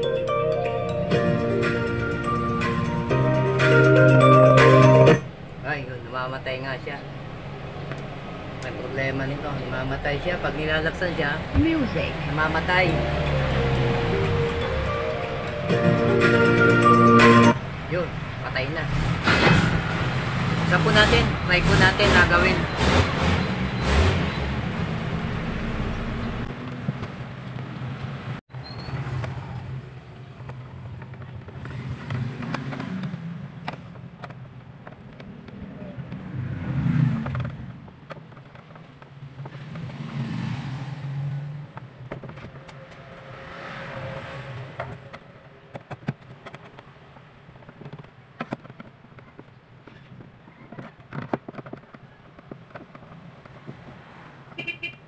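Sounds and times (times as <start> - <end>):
background noise: 4.0 - 55.0.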